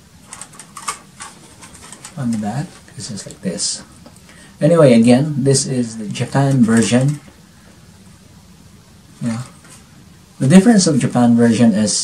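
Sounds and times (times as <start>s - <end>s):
faint steady hiss: 0.0s - 12.0s
man's voice: 4.6s - 7.3s.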